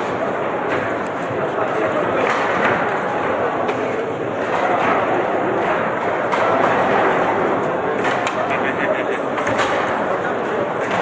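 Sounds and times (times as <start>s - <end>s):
din of many voices: 0.0s - 11.0s.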